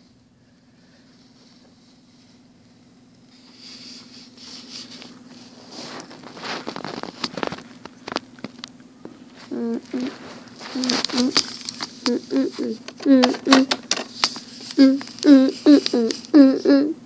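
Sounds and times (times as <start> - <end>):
faint steady hum: 0.0 - 17.0
child's voice: 9.5 - 10.1, 10.8 - 11.4, 12.1 - 13.7, 14.8 - 17.0.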